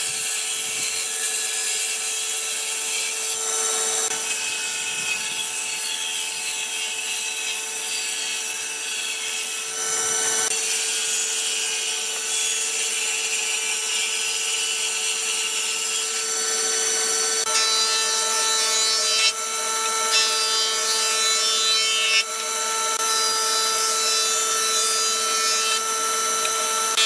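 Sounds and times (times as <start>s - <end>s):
table saw cutting wood: 0.0s - 27.0s.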